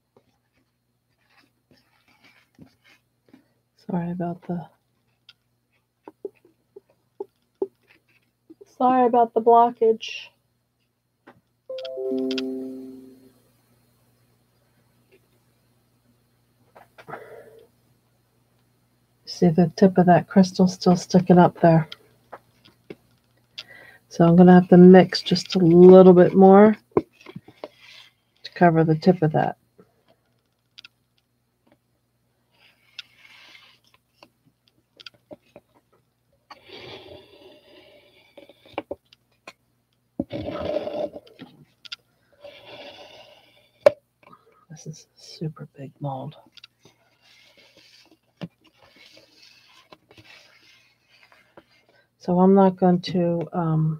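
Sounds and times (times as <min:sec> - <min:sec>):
descending chime notes: 0:11.7 - 0:13.3
plastic cup scraping: 0:40.2 - 0:41.5, 0:46.8 - 0:52.0.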